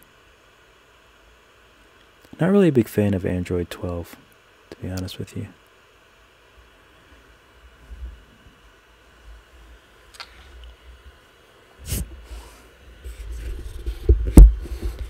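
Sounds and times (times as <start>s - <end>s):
microphone handling rumbles: 13.1s - 15.0s.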